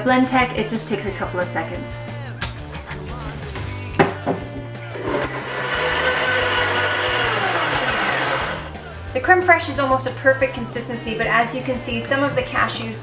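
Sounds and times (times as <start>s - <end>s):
blender running: 5.0s - 8.8s.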